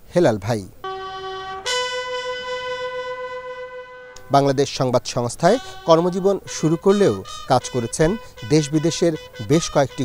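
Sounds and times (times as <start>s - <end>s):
bugle holding long note: 0.8s - 10.0s.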